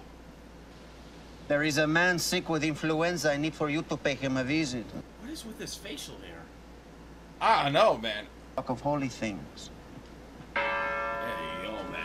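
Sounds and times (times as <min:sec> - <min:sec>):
hanging bell ringing: 0:10.6 - 0:12.0.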